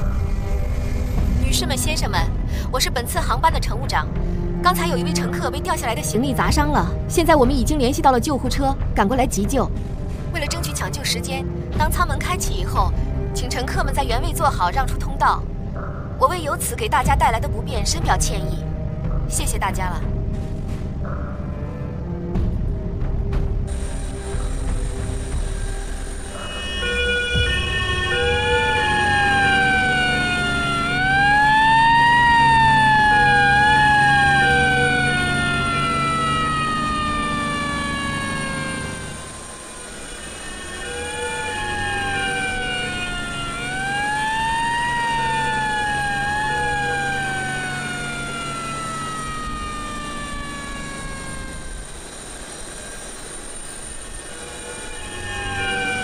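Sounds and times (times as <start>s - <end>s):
ambulance siren wailing: 23.7s - 56.0s.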